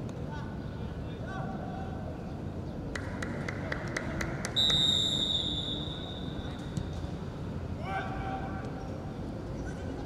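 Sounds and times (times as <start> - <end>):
referee's whistle blast: 4.6 - 6.4.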